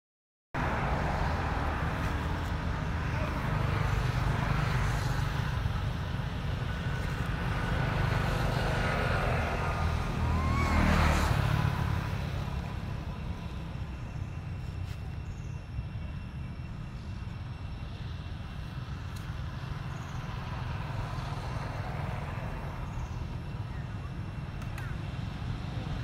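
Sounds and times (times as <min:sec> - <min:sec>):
low outdoor rumble and hiss: 0:00.6 - 0:26.0.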